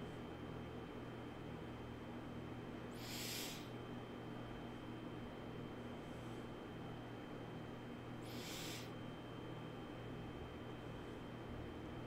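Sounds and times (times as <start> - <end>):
low electrical hum: 0.0 - 12.0
breath through the nose: 3.0 - 3.7, 8.3 - 8.9.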